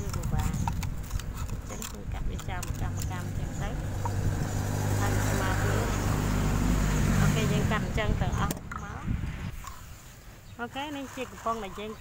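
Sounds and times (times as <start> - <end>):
person talking: 0.0 - 0.8, 1.5 - 3.9, 4.9 - 6.2, 7.1 - 9.2, 10.6 - 12.0
scissors cutting plastic bottle: 0.0 - 3.4.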